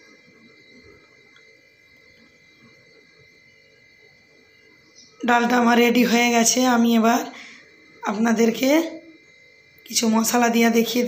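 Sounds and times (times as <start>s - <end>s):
faint high-pitched tone: 0.0s - 11.0s.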